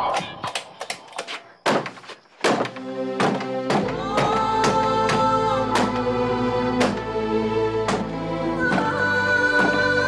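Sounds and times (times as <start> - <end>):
knocking on wooden door: 1.8 - 6.0
music: 2.5 - 10.0.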